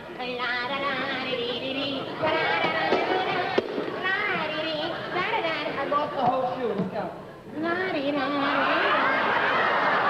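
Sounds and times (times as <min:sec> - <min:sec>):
audience laughing: 0:01.0 - 0:06.0, 0:08.4 - 0:10.0.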